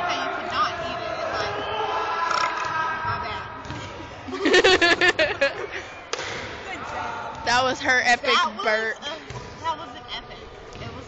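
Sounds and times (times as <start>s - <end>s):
laughter: 4.3s - 5.8s.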